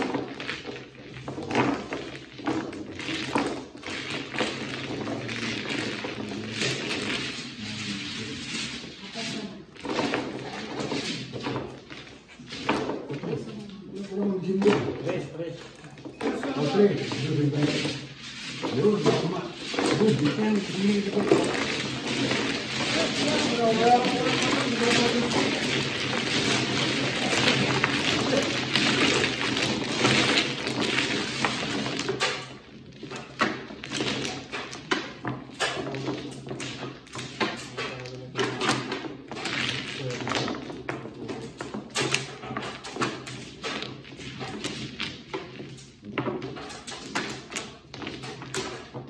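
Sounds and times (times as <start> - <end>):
tiles shuffling clatter: 0.0 - 49.0.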